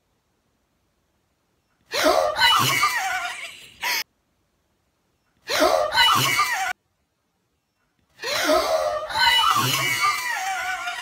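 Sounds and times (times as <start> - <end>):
girls shrieking and gasping: 1.9 - 4.0, 5.5 - 6.8, 8.2 - 11.0.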